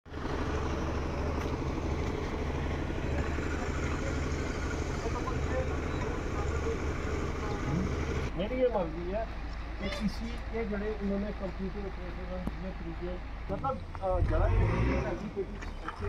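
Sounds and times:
machinery engine drone: 0.1 - 8.4.

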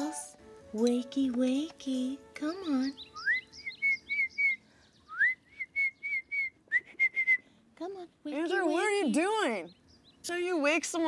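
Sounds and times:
person whistling bird-like call: 3.2 - 7.4.

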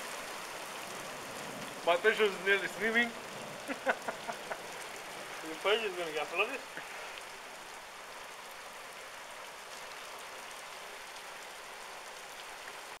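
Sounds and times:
heavy rain hissing: 0.0 - 13.0
hailstones ticking: 0.6 - 7.7.

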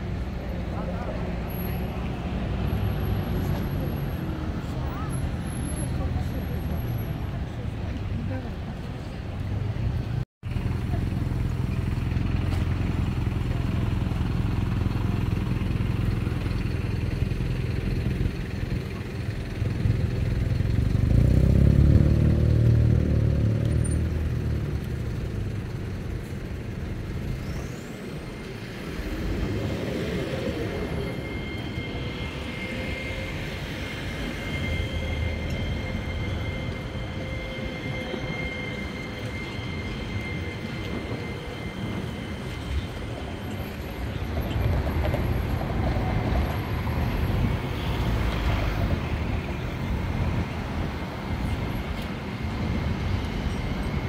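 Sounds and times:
cars and buses passing: 0.0 - 54.0.

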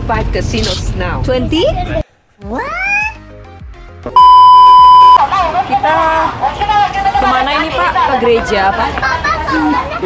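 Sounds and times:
test-tone beep: 4.2 - 5.2.

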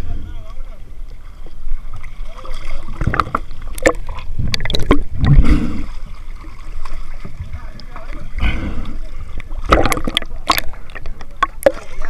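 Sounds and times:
muffled gurgling water surge: 0.0 - 12.0
seawater sloshing and splashing: 0.4 - 12.0.

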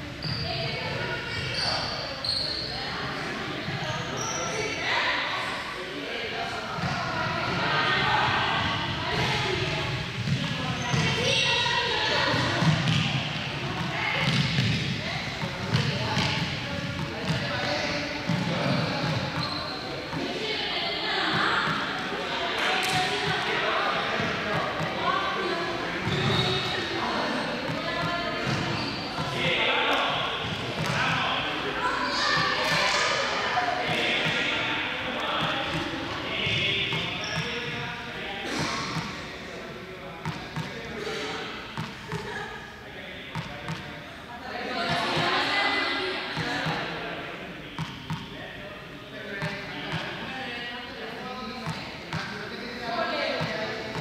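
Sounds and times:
indistinct echoing voices: 0.0 - 54.0
balls bouncing on hall floor: 8.5 - 20.4, 21.2 - 25.1, 25.9 - 27.0, 27.6 - 31.3, 32.2 - 33.0, 33.8 - 37.8, 40.2 - 40.9, 46.4 - 46.9, 53.3 - 54.0.

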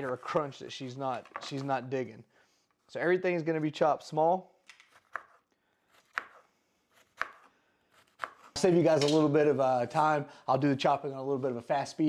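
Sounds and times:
knife chopping on wooden board: 4.9 - 5.4, 6.0 - 6.4, 7.0 - 8.6.

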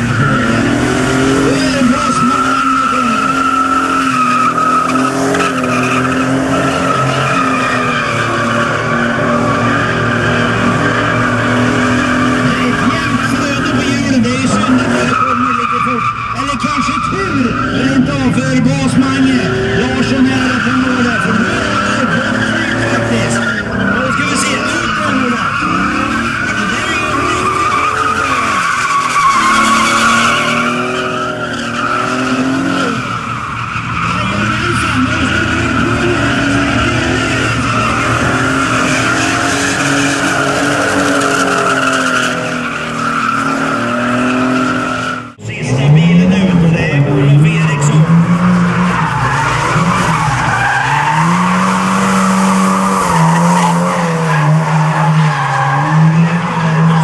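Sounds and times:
car engine revving hard: 0.0 - 57.0
tyres skidding and squealing: 0.0 - 57.0.

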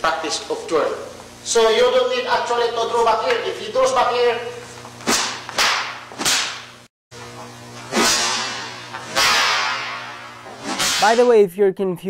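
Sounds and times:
hand slapping body: 5.0 - 6.7
stick striking: 5.0 - 6.7, 7.9 - 11.3.

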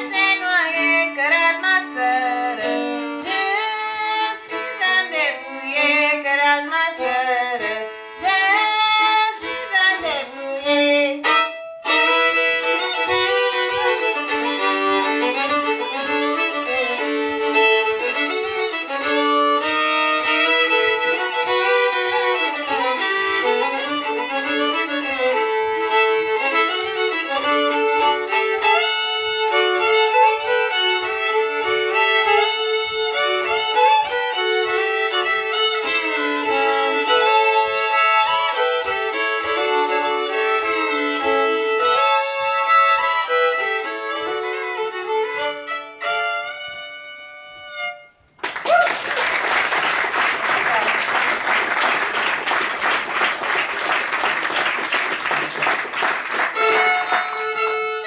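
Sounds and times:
two fiddles playing in harmony: 0.0 - 48.4, 50.0 - 58.0
audience applause: 48.4 - 57.8.

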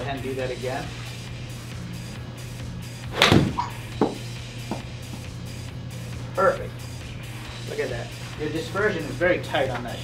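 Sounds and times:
background music: 0.0 - 10.0
golf club striking ball: 3.0 - 5.2
ball bouncing knocks: 3.2 - 5.2.

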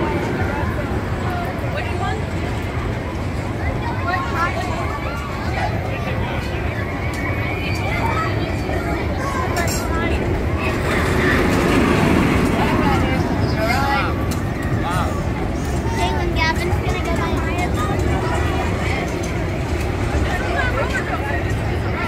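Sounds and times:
people's voices: 0.0 - 22.0
roller coaster rumbling on track: 0.0 - 22.0.

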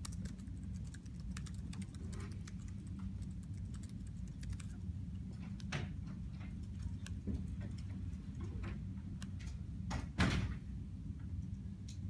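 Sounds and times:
laptop keyboard typing: 0.0 - 5.8, 6.4 - 8.4
low room hum: 0.0 - 12.0.

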